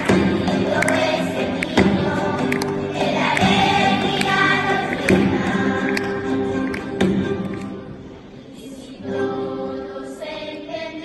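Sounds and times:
sharp percussion taps: 0.0s - 7.8s
acoustic guitar: 0.0s - 11.0s
children's choir singing: 0.0s - 11.0s.

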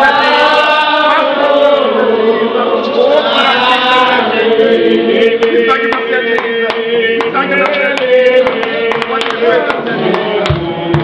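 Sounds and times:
group chanting a slow hymn: 0.0s - 11.0s.

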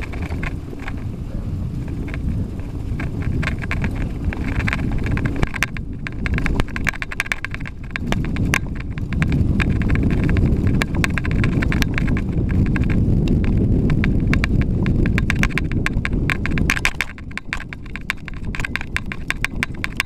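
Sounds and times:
bike rattling over rough trail: 0.0s - 20.0s
wind rumble on microphone: 0.0s - 20.0s.

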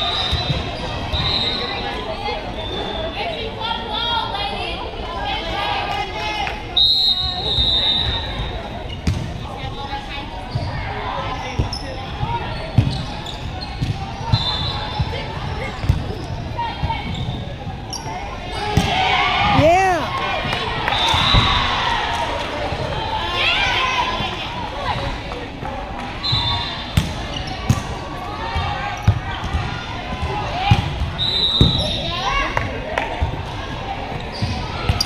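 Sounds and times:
sneakers squeaking on hardwood: 11.4s - 18.9s, 26.2s - 27.8s, 34.2s - 35.0s
volleyball struck with dull thuds: 27.0s - 28.0s.

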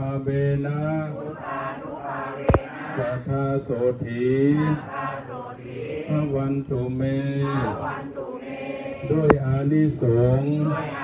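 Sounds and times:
monks chanting: 0.0s - 11.0s.

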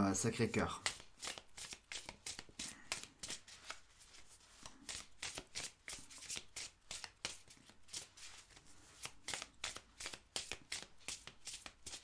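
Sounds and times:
cards being shuffled by hand: 0.5s - 12.0s.

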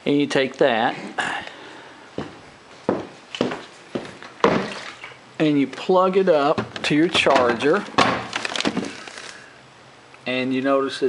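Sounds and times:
plastic battery pack knocks and rustles: 6.6s - 9.0s.

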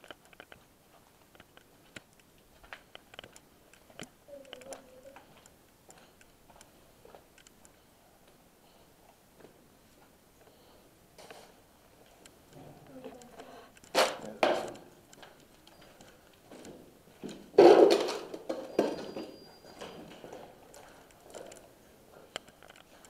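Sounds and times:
indistinct voices: 4.3s - 5.4s.

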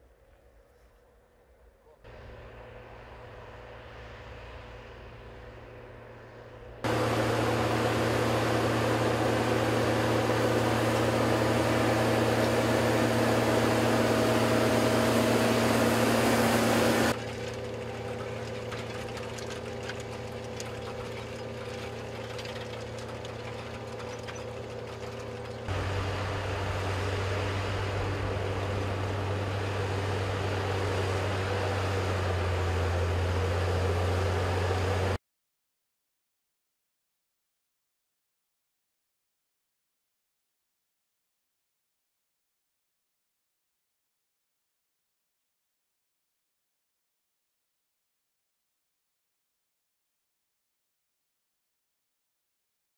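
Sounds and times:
tractor diesel engine running: 2.1s - 35.2s.

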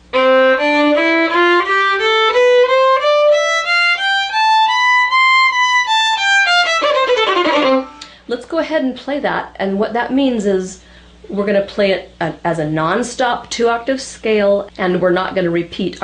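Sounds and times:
violin bowing a scale: 0.0s - 8.1s.

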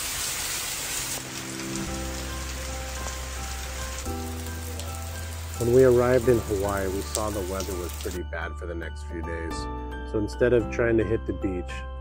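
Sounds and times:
rain falling: 0.0s - 8.2s
soft background music: 1.2s - 12.0s.

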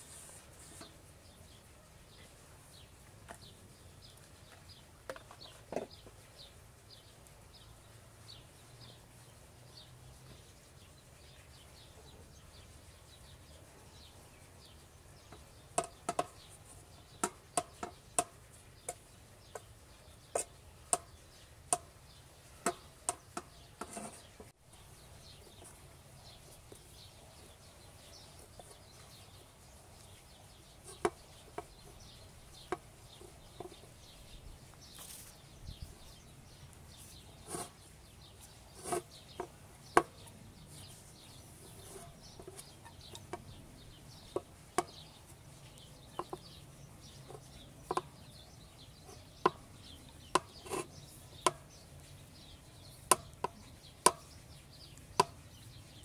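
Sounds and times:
small birds chirping: 0.0s - 56.0s
hands patting dough on metal tray: 15.4s - 19.7s, 22.6s - 24.5s, 52.9s - 55.6s
rolling pin on metal pan lid: 22.6s - 24.5s, 38.8s - 40.1s, 50.3s - 51.6s.

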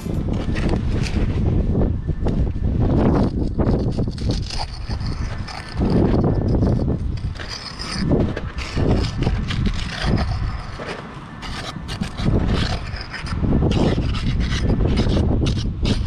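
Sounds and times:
trowel scraping mortar: 3.0s - 16.0s.

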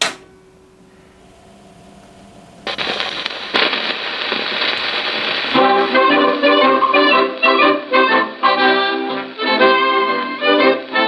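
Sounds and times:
sharp click: 0.0s - 0.3s
record surface noise crackling: 0.0s - 11.0s
band introduction on record: 5.5s - 11.0s.

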